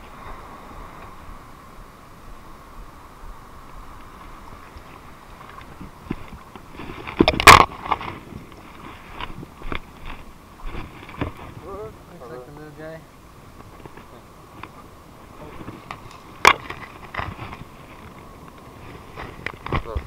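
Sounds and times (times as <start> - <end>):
wind noise: 0.0 - 20.0.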